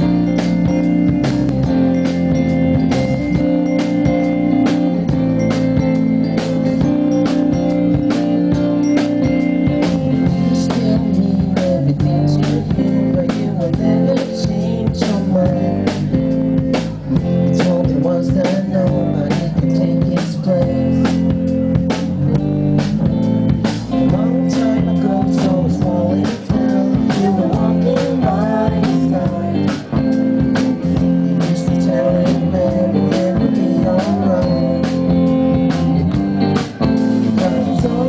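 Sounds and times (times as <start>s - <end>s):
drum kit steady beat: 0.0s - 38.0s
electric guitars: 0.0s - 38.0s.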